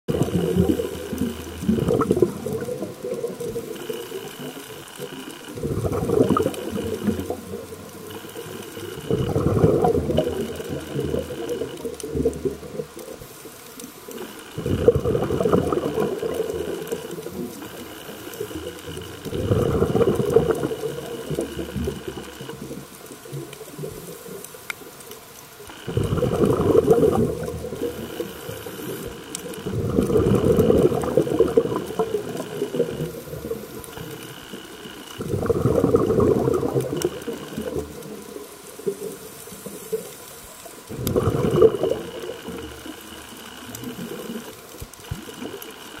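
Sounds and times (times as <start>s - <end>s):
exhaled bubbles underwater: 0.1s - 25.0s, 25.6s - 46.0s.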